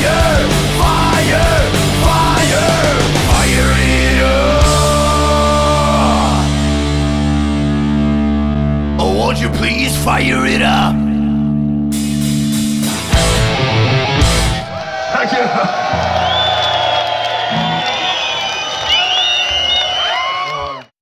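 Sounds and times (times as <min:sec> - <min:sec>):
distorted guitar chord: 0:00.0 - 0:09.0, 0:10.9 - 0:14.6
crowd cheering and whistling: 0:14.5 - 0:21.0.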